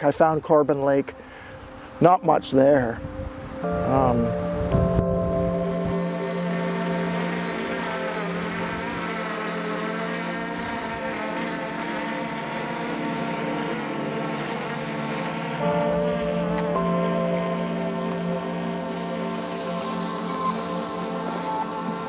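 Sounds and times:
drone propellers whining: 1.5 - 22.0.

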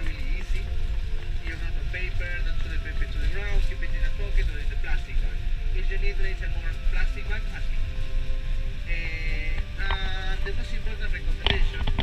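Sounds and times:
bus engine rumble: 0.0 - 12.0
indistinct voices talking: 0.0 - 12.0.

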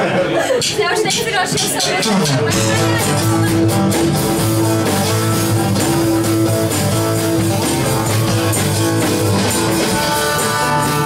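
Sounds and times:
strummed acoustic-electric guitar: 0.9 - 11.0
double bass: 2.4 - 11.0.

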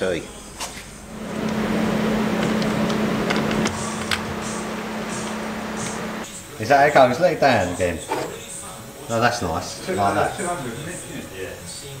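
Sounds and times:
lift motor humming and hissing: 1.0 - 6.3.

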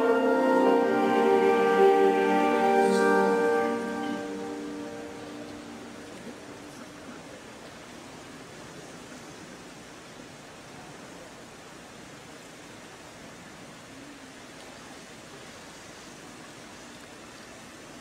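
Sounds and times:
steady background hiss: 0.0 - 18.0.

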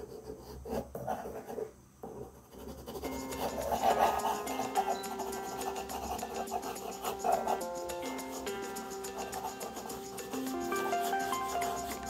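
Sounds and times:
pencil scratching on paper: 0.0 - 12.0
soft background music: 2.7 - 12.0.

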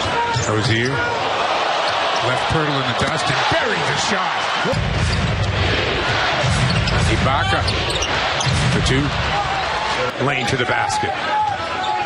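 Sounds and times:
crowd din: 0.0 - 12.0.

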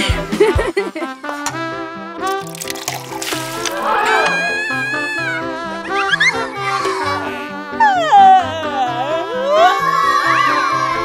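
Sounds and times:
playful background music: 0.0 - 11.0
cartoon warbling effect: 3.6 - 6.4.

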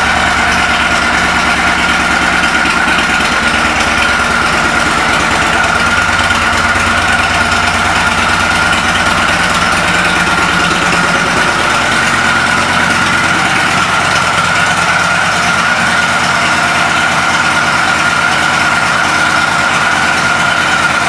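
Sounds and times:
motorcycle engine idling: 0.0 - 21.0.

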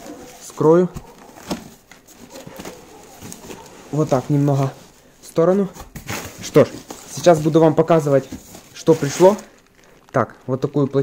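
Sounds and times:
cardboard clicks and rustles: 0.0 - 5.0, 5.6 - 11.0.

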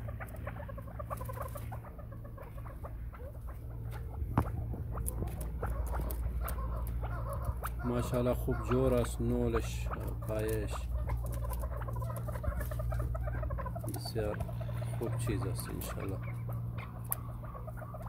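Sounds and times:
partridge chicks chirping: 0.0 - 18.0.

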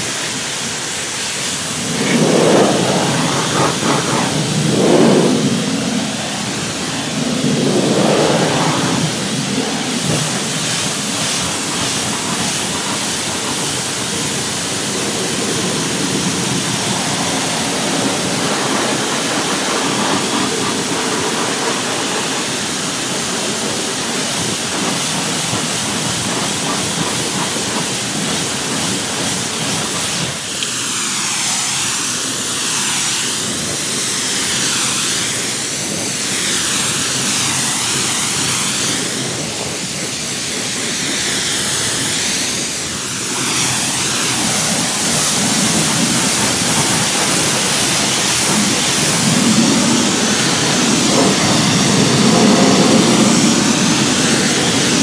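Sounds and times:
pressure washer jet hissing: 0.0 - 55.0.

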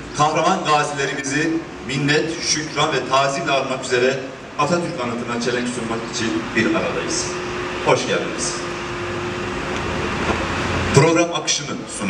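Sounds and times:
passing traffic rumble: 0.0 - 12.0.

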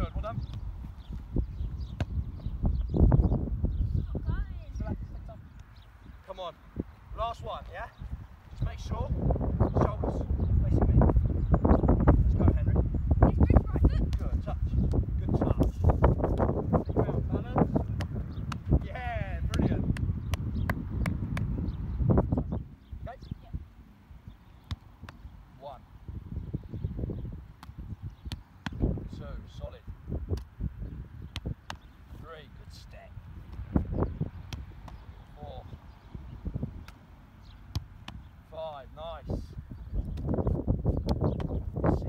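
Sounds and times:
wind buffeting microphone: 0.0 - 23.8, 26.0 - 37.0, 37.7 - 42.0.

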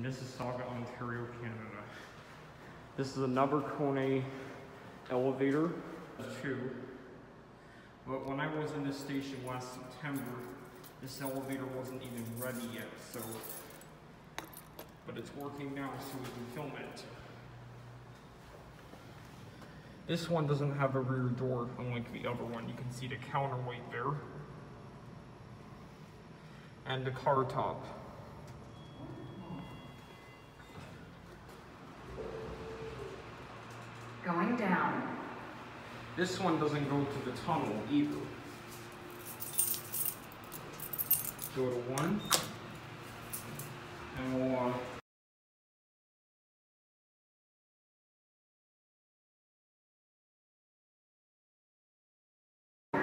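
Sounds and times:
light metallic jingling and clicking: 9.0 - 16.6, 39.1 - 42.5
elevator hum: 28.0 - 41.4.

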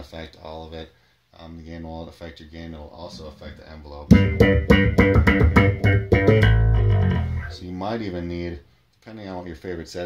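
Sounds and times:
electric bass with envelope filter: 3.1 - 7.6.

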